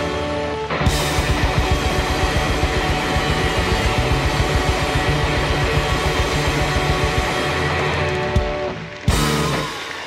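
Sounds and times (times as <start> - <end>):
electric guitars: 0.0 - 10.0
fast pounding drum beat: 0.9 - 10.0.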